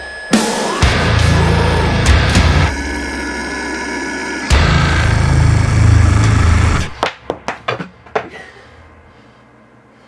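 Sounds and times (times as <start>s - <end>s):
heavy metal song: 0.4s - 6.9s.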